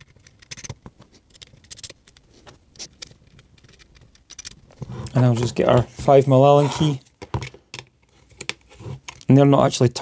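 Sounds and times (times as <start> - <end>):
metallic clicks and scrapes of bolts: 2.8 - 4.7.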